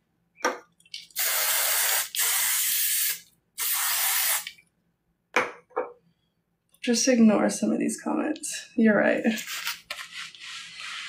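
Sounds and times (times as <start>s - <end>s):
aerosol spray hissing: 1.2s - 4.5s.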